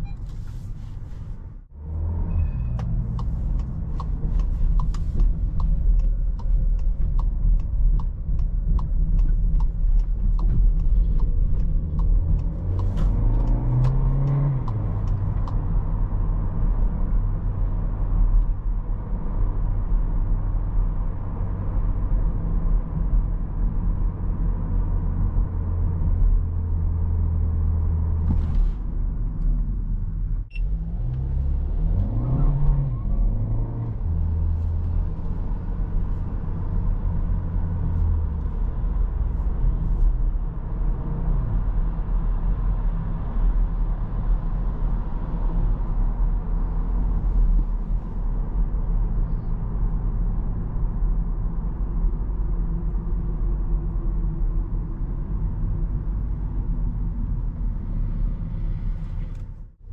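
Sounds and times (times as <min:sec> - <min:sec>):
car engine: 0:00.0 - 0:59.9
tyre and road noise: 0:00.0 - 0:59.9.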